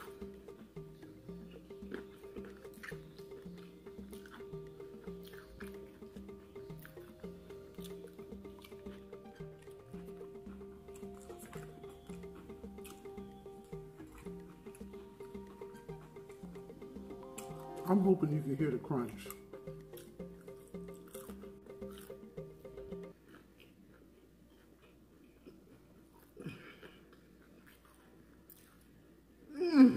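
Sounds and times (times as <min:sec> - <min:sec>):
crunchy food being chewed: 0:00.0 - 0:17.8, 0:19.3 - 0:22.3, 0:23.1 - 0:29.2
quiet background music: 0:00.0 - 0:29.9.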